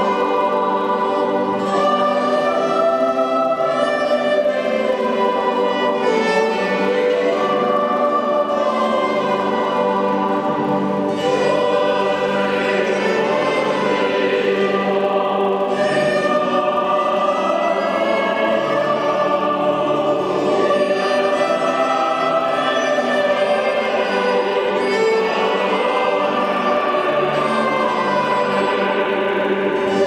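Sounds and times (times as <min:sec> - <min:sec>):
mixed choir singing: 0:00.0 - 0:30.0.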